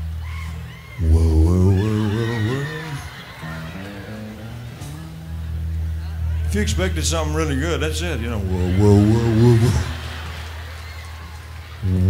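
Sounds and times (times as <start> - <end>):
man's wavering call: 0.0 - 5.4, 8.3 - 10.1
band holding low note: 1.0 - 12.0.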